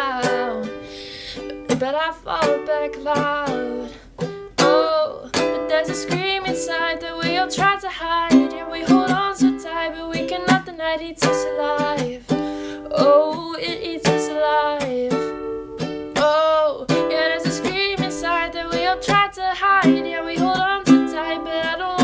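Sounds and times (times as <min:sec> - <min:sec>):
woman singing: 0:00.0 - 0:00.8, 0:01.4 - 0:15.5, 0:16.1 - 0:22.0
ukulele strumming: 0:00.0 - 0:22.0.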